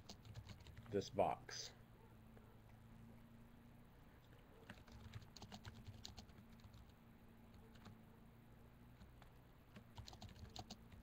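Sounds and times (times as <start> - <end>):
computer keyboard typing: 0.0 - 0.9, 4.6 - 8.0, 9.0 - 11.0.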